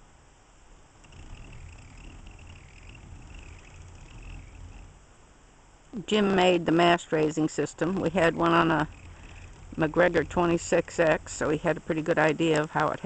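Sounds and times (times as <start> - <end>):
wavering squeak: 1.0 - 5.3, 7.5 - 12.6
winch low rumble: 1.0 - 13.0.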